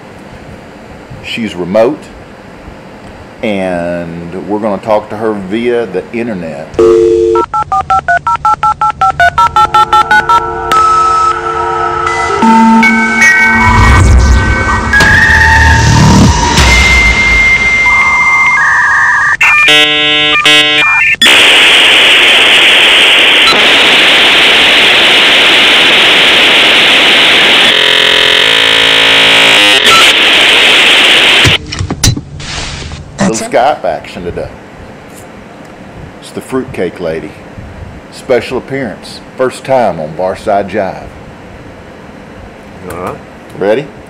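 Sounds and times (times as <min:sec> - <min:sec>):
touch-tone dialing beeps: 0:06.8 - 0:11.0
modem chirping: 0:06.8 - 0:31.6
modem hiss: 0:14.2 - 0:31.6.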